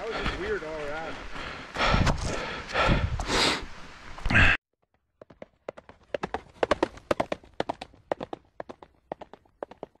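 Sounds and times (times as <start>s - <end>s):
galloping horse hoofbeats: 4.9s - 10.0s.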